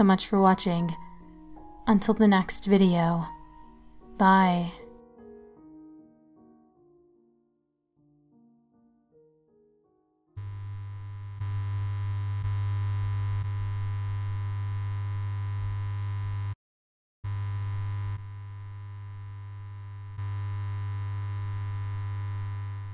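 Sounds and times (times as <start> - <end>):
faint high tone: 4.2 - 4.9.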